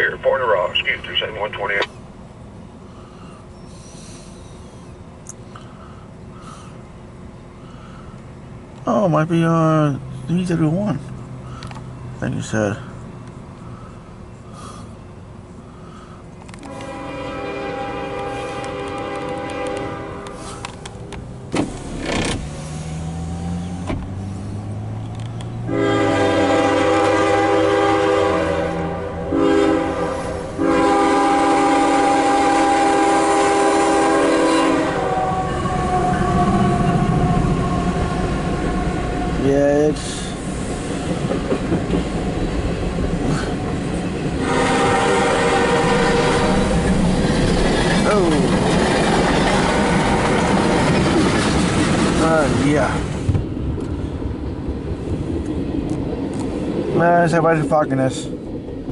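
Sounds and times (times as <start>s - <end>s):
diesel locomotive engines: 0.0s - 58.9s
train cars rumbling and clattering: 0.0s - 58.9s
locomotive horn blasts: 16.6s - 20.7s, 25.6s - 37.8s, 44.4s - 46.7s.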